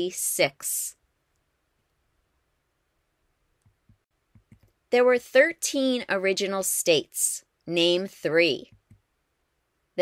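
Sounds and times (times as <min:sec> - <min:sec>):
person speaking: 0:00.0 - 0:01.0.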